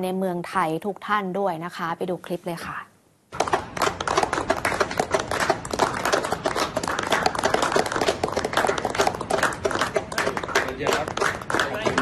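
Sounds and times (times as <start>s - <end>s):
group clapping: 3.3s - 12.0s.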